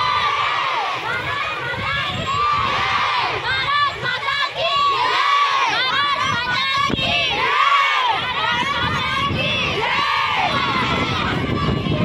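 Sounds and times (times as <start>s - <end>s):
children shouting and cheering: 0.0s - 12.0s.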